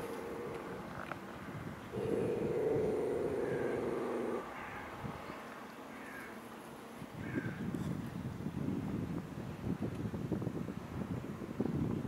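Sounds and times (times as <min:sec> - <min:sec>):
small dog growling: 0:00.0 - 0:01.1, 0:01.9 - 0:04.4.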